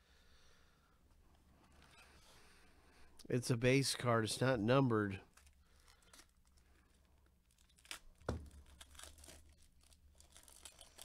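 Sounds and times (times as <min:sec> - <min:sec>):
plastic wrapping crinkling: 0:05.3 - 0:11.0.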